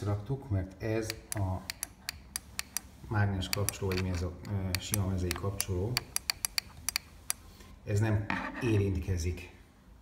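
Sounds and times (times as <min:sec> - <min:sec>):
screwdriver tapping plastic switch: 0:01.0 - 0:07.4.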